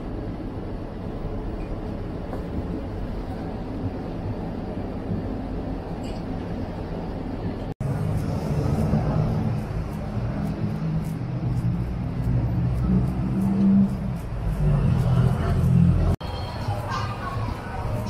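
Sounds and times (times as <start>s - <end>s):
street traffic rumble: 0.0s - 18.0s.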